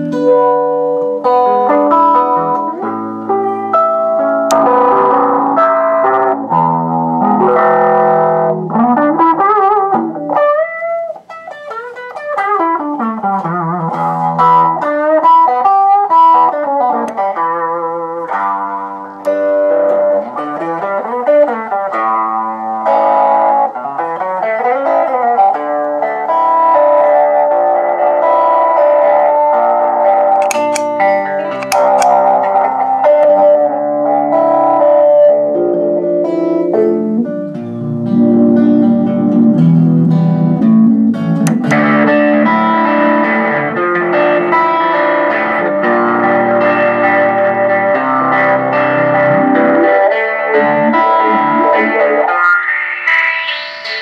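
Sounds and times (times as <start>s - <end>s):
electric guitar with wah filter: 0.0s - 54.0s.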